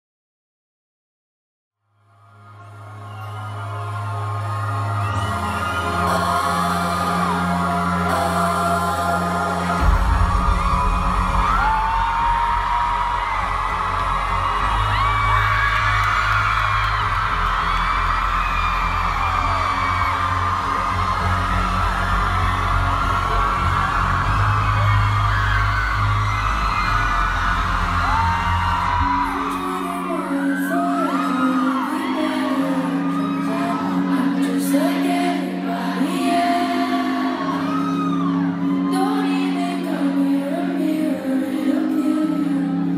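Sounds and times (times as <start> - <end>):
audience whooping and screaming: 2.3 - 40.6.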